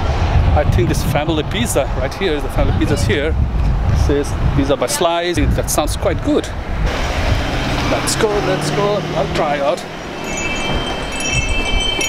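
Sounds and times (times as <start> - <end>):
shop door chime ringing: 10.0 - 12.0.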